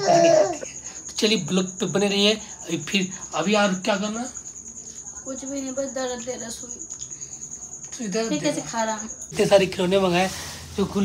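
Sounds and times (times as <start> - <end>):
high-pitched cricket trill: 0.0 - 11.0.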